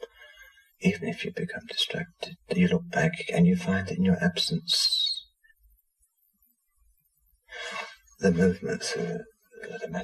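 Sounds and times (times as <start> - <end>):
man's voice: 0.8 - 5.3, 7.6 - 10.0.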